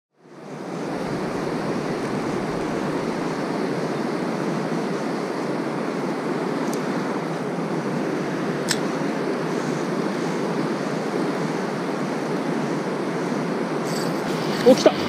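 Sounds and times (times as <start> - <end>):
river water rushing over weir: 0.2 - 15.0.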